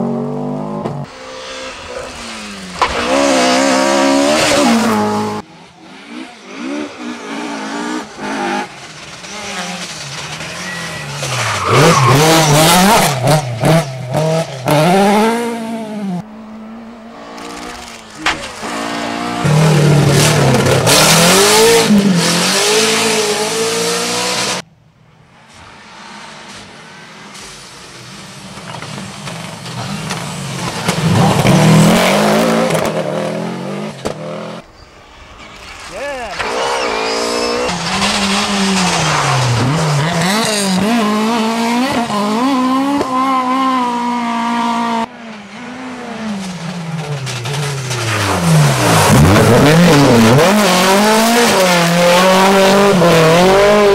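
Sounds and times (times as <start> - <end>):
rally car engines revving: 0.0 - 24.6, 25.5 - 34.7, 35.4 - 53.9.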